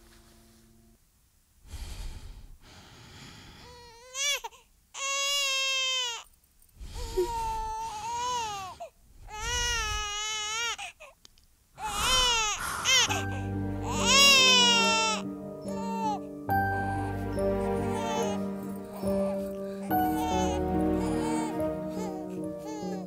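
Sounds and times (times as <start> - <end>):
infant crying: 3.7 - 6.2, 7.0 - 11.1, 11.8 - 23.0.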